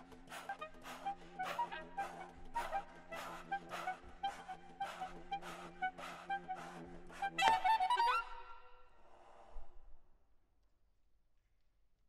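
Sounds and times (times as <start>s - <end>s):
breathy air noises: 0.0s - 7.4s, 8.7s - 10.1s.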